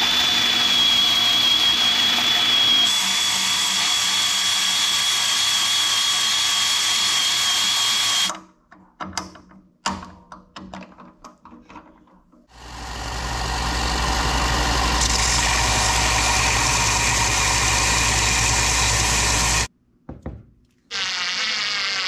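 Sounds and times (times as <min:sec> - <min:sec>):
wood lathe motor humming: 0:00.0 - 0:08.3, 0:12.6 - 0:19.7.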